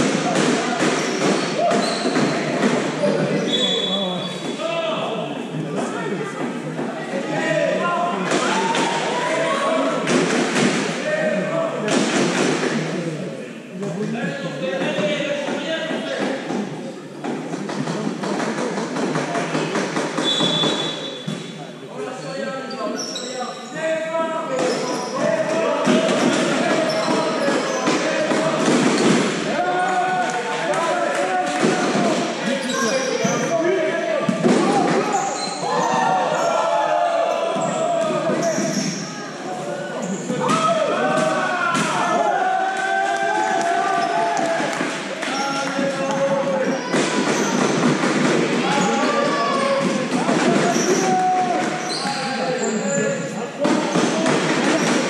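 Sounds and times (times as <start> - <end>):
ball bouncing on hall floor: 0.0 - 4.6, 43.4 - 52.3
players shouting: 24.0 - 53.1.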